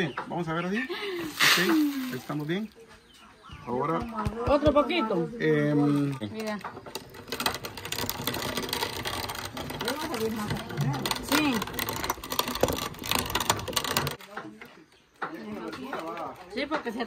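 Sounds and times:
grain mill grinding: 0:01.0 - 0:02.7, 0:06.0 - 0:14.2.

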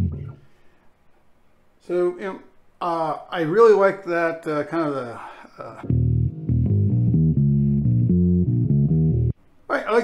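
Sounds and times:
electric bass line plucked notes: 0:00.0 - 0:00.4, 0:05.8 - 0:09.3.

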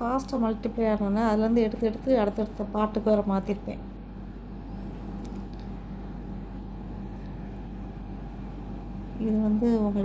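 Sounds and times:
low background rumble and hiss: 0:00.0 - 0:10.0.

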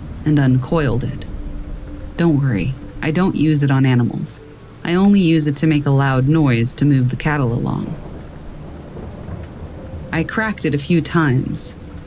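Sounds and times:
low thunder rumble: 0:00.0 - 0:12.0
steady rain: 0:00.0 - 0:12.0.

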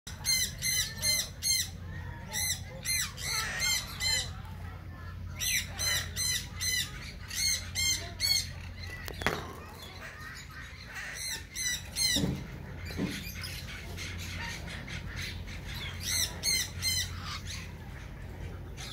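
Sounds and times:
parrot squeaky calls: 0:00.1 - 0:04.4, 0:05.3 - 0:18.0.

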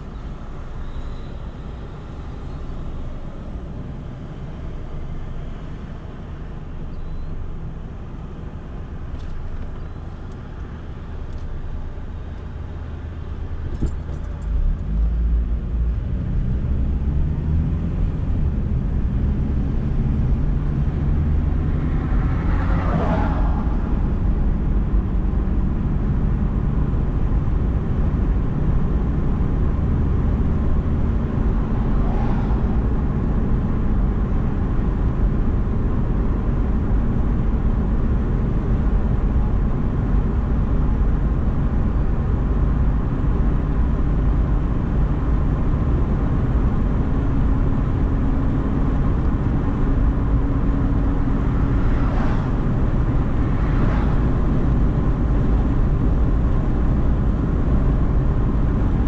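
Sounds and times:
car engine running: 0:00.0 - 0:59.0
road noise: 0:00.0 - 0:59.0.

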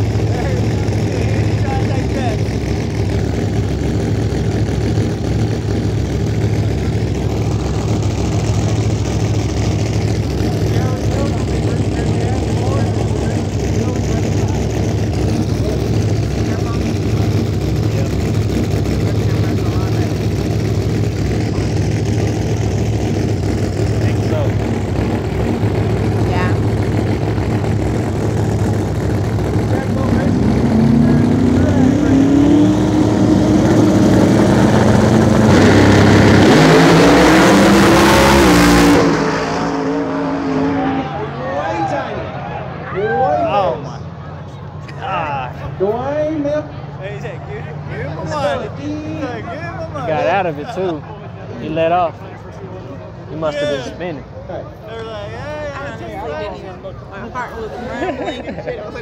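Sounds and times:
drag race car engine revving: 0:00.0 - 0:54.4.

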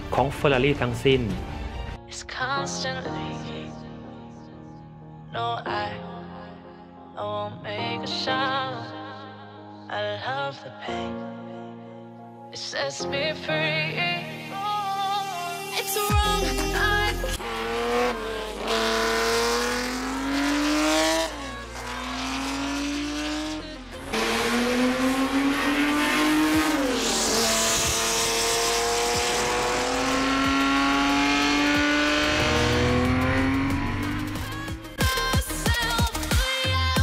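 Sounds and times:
racing car engine revving: 0:17.4 - 0:34.9.

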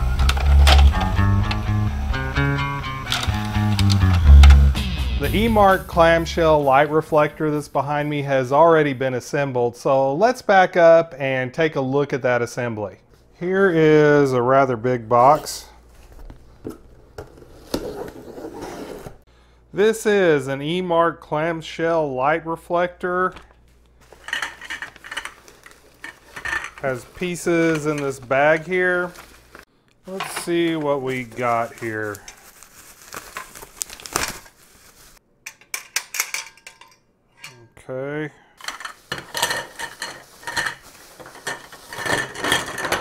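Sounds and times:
bubble wrap crinkling: 0:24.0 - 0:35.2.

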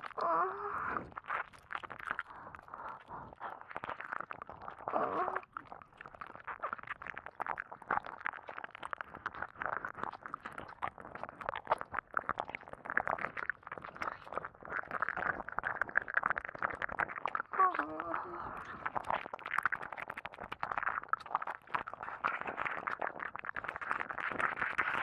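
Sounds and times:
wet mouth sounds: 0:00.0 - 0:25.0.

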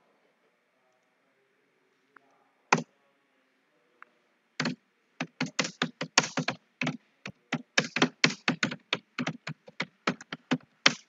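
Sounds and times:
typing on computer keyboard: 0:04.6 - 0:11.0.

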